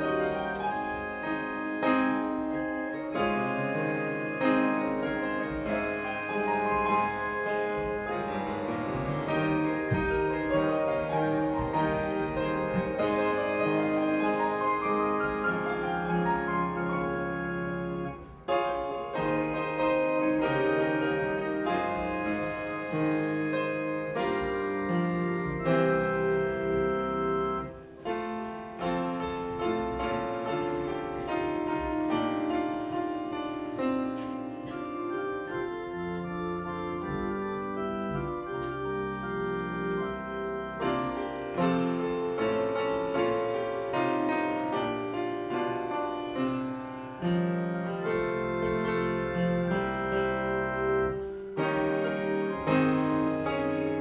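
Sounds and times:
piano playing slow chords: 0.0 - 54.0.

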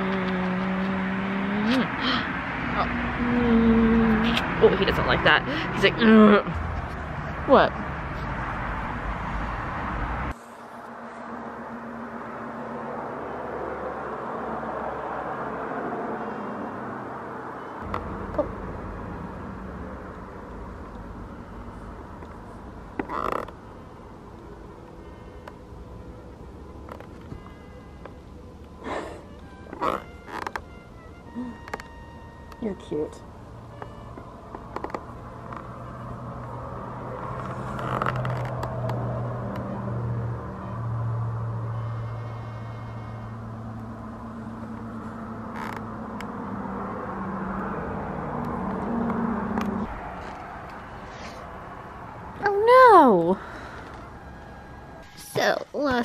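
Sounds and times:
woman sighing: 1.7 - 2.4, 28.8 - 29.3
low background rumble: 17.8 - 38.2.

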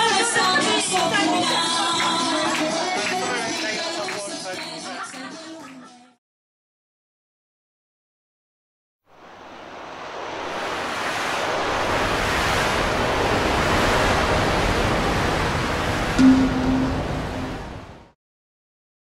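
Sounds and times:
steady rushing noise: 9.1 - 18.2.

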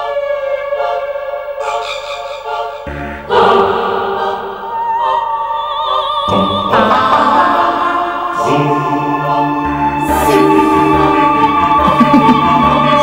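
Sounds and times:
wordless choir singing: 0.0 - 13.0
orchestral chords: 2.4 - 5.1, 6.7 - 13.0.

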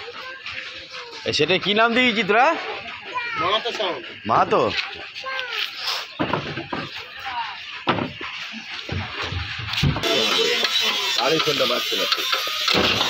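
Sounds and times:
men's voices: 0.0 - 5.4, 6.0 - 13.0
music: 0.0 - 13.0
wooden cabinet knocks: 7.9 - 8.2.

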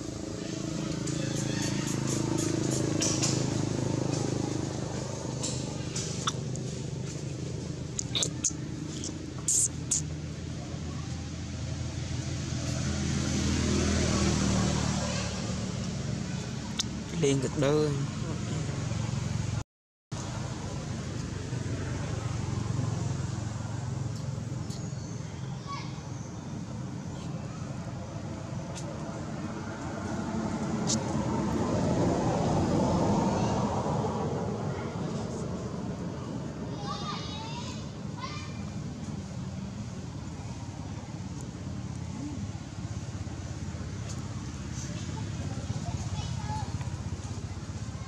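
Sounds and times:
vehicle engine humming: 0.0 - 48.0.

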